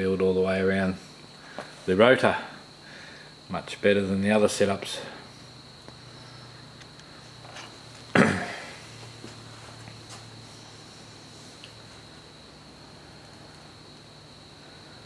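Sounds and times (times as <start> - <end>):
motor humming with high whine: 0.0 - 15.0.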